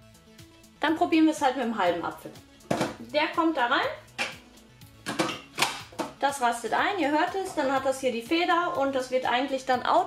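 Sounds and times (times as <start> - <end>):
plastic lid snapping into place: 2.7 - 3.0, 4.2 - 4.4, 5.0 - 6.2.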